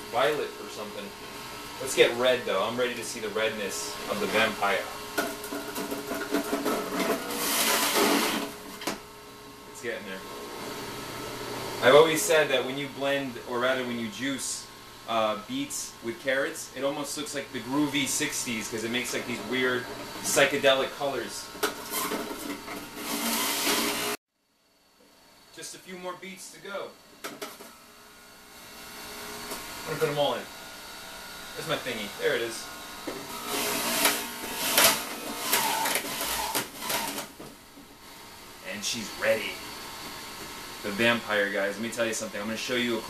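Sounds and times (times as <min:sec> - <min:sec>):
juicer grinding and whirring: 0:04.0 - 0:09.1, 0:19.1 - 0:20.4, 0:21.5 - 0:24.2, 0:27.2 - 0:37.6
food pusher knocking: 0:05.1 - 0:09.0, 0:21.6 - 0:24.2, 0:33.0 - 0:37.5.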